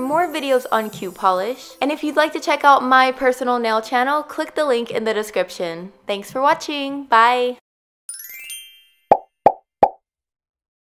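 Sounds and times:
rising chime glissando: 8.1s - 9.1s.

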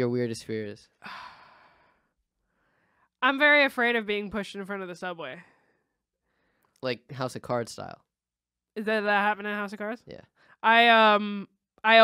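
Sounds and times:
person sighing: 1.0s - 1.7s
person speaking: 6.8s - 7.9s.

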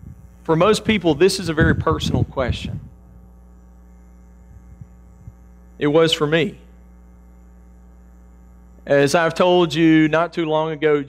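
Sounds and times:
electrical mains hum: 0.0s - 11.0s
man's voice: 0.5s - 2.8s, 8.9s - 11.0s.

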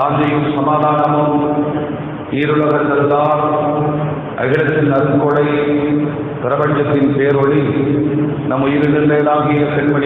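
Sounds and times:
man chanting: 0.0s - 7.9s, 8.5s - 10.0s.

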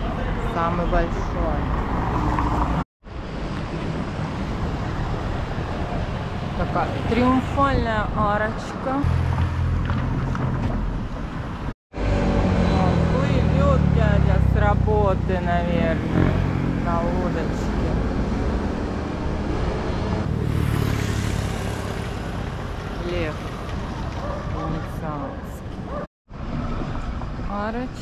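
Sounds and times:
people talking: 0.0s - 1.7s, 6.6s - 9.1s, 12.7s - 16.2s, 16.8s - 18.0s, 23.0s - 23.4s, 24.5s - 25.6s, 27.5s - 28.0s.

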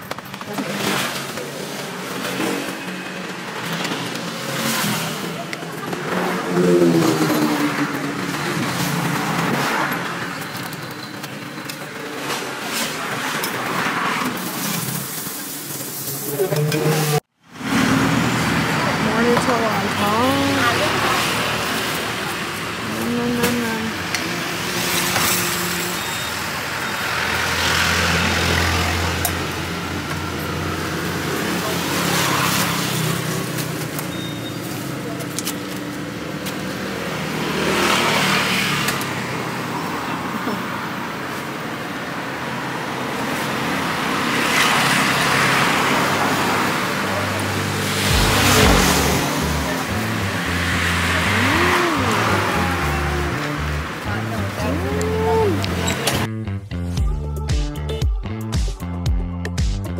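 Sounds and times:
motorbikes passing by: 0.0s - 15.2s, 16.5s - 56.3s
cars passing by: 0.0s - 56.4s.

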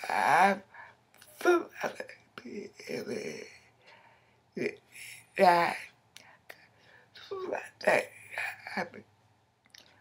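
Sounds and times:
woman speaking softly: 4.6s - 5.9s, 7.2s - 9.0s.

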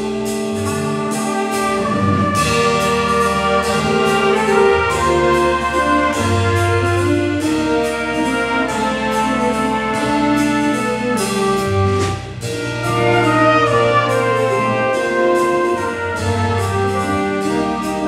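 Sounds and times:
drum kit steady beat: 0.0s - 18.0s
horn section playing chords: 0.0s - 18.0s.

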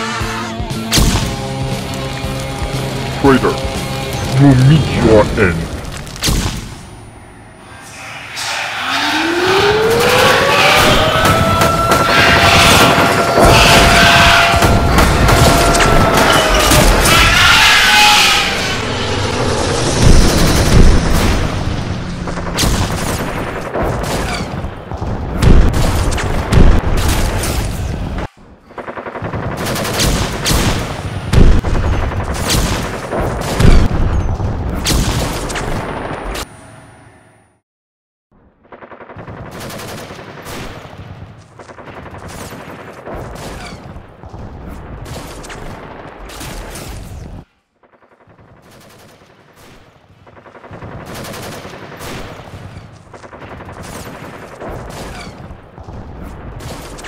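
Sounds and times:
rapid gunfire sound effects: 9.0s - 18.2s, 20.0s - 34.0s, 38.4s - 57.0s.

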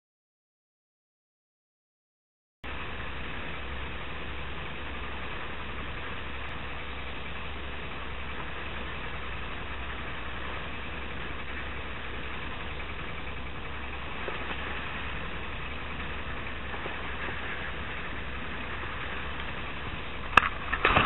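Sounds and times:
low rumble: 2.6s - 21.0s
water breaking along hull: 2.7s - 21.0s.

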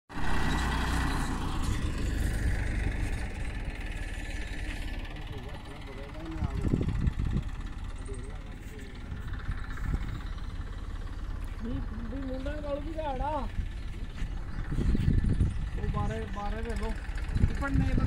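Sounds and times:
tractor diesel engine running: 0.1s - 18.0s.

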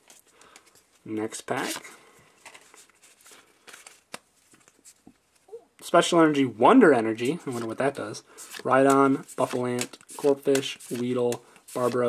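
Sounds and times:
trading cards rustling and clicking: 0.0s - 5.5s, 7.1s - 12.0s.

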